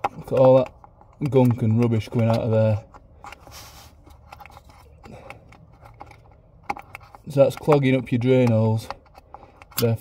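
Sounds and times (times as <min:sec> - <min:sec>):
screwdriver scraping and clicking: 0:00.0 - 0:10.0.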